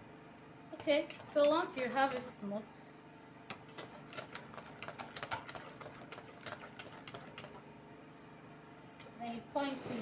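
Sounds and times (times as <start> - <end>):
whisk clicking against metal bowl: 0.8 - 2.4, 3.5 - 7.6.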